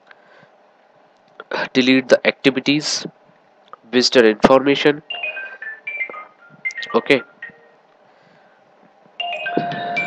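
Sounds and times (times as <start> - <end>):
electronic beeping melody: 5.1 - 7.8, 9.2 - 10.0.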